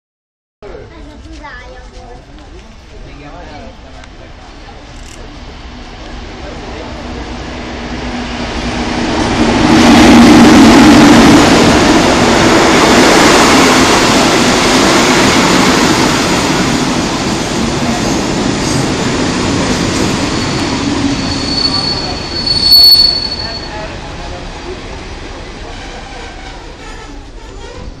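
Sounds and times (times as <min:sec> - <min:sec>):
train rumbling past: 0:01.5 - 0:28.0
high brake squeal: 0:20.2 - 0:23.9.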